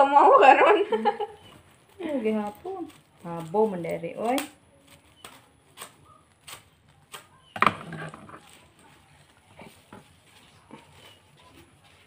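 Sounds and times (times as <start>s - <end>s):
plastic wrappers rustling: 1.0s - 12.0s.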